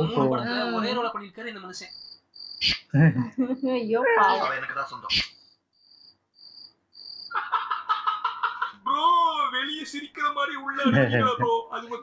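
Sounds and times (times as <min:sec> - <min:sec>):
film dialogue: 0:00.0 - 0:12.0.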